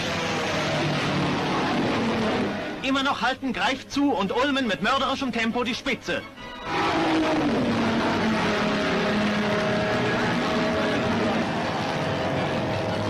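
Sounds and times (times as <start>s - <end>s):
racing car engine at speed: 0.0s - 2.8s, 6.8s - 13.0s
continuous rushing noise: 7.2s - 13.0s.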